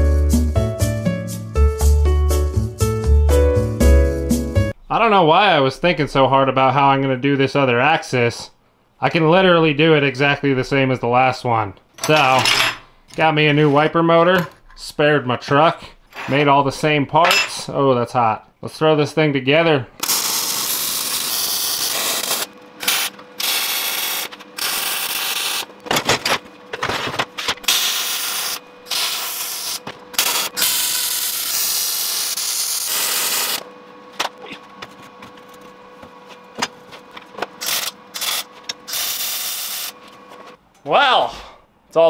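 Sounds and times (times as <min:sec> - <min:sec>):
metal parts clanking: 0:12.0 - 0:12.9
arc welding crackling and hissing: 0:20.0 - 0:25.9, 0:27.3 - 0:33.7, 0:37.6 - 0:40.0.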